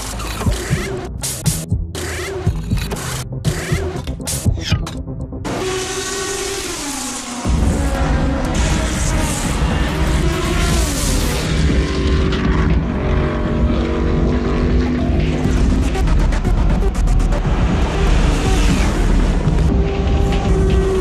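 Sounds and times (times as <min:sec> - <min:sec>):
music soundtrack: 0:00.0 - 0:21.0
race car engine running: 0:05.4 - 0:21.0.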